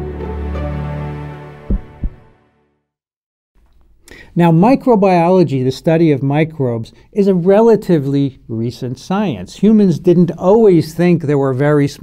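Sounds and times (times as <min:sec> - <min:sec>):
deep thumps: 0:01.7 - 0:02.3.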